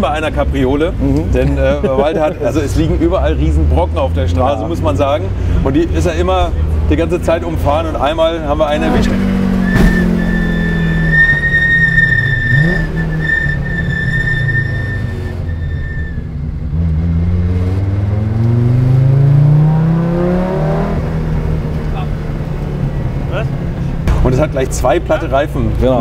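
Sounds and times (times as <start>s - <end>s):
car engine revving from inside cabin: 16.7s - 22.0s.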